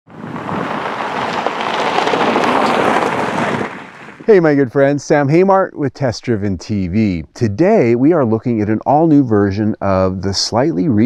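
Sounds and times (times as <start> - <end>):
rushing hiss with crackles: 0.1 - 4.3
person speaking: 4.3 - 11.0.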